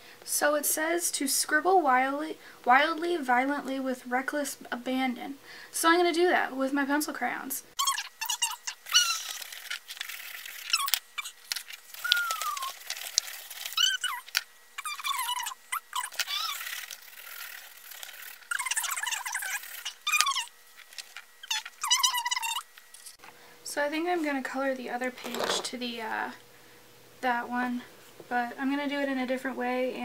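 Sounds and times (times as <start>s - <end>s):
pencils scribbling on paper: 7.8s - 22.6s.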